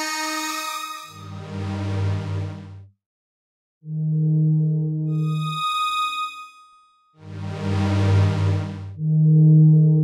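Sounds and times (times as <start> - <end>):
low held synthesizer tone: 8.1 - 10.0.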